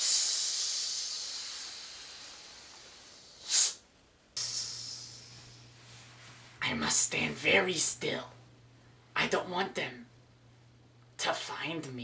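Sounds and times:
sharp burst of breath: 0:00.0 - 0:03.8
hissing breath: 0:00.0 - 0:05.8.

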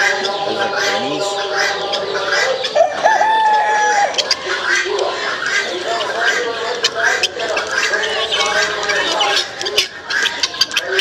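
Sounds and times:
poultry clucking: 0:00.0 - 0:11.0
rooster crowing: 0:02.7 - 0:04.2.

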